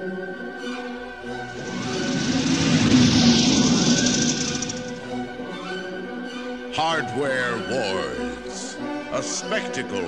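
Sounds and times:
rushing noise with low rumble: 0:01.2 - 0:05.6.

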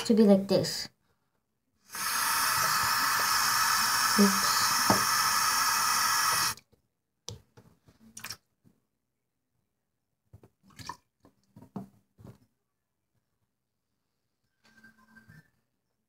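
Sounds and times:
water splashing in sink: 0:01.9 - 0:06.6, 0:08.1 - 0:08.5, 0:10.5 - 0:11.4.

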